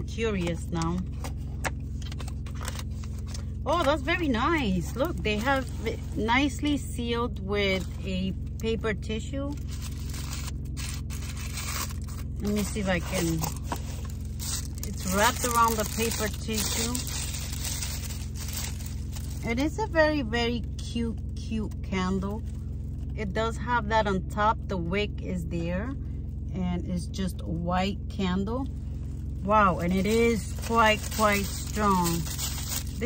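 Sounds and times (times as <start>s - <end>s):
car cabin hum: 0.0s - 33.0s
tissue paper crinkling: 9.6s - 19.4s, 29.9s - 33.0s.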